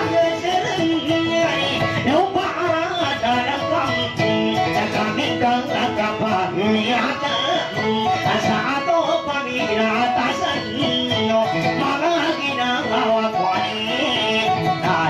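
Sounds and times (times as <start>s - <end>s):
person singing: 0.0s - 15.0s
plucked guitar: 0.0s - 15.0s.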